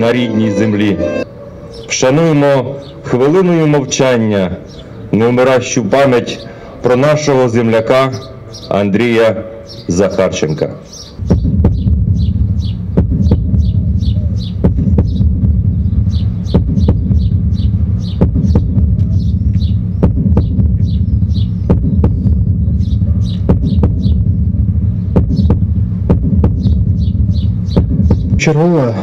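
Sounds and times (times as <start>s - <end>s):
birds chirping: 0.0s - 29.0s
low throbbing hum: 11.2s - 28.5s.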